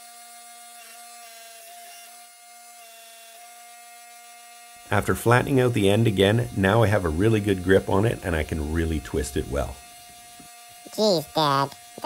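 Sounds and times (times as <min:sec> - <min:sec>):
electric motor and pump humming: 0:00.0 - 0:12.0.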